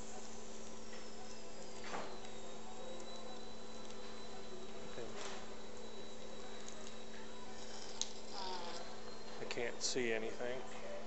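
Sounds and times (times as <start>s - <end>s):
surgical equipment humming and hissing: 0.0s - 11.0s
thin high whine: 0.0s - 11.0s.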